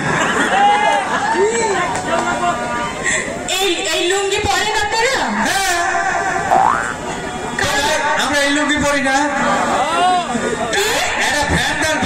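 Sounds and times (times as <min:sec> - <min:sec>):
cartoon falling pitch glide: 0:06.5 - 0:07.0.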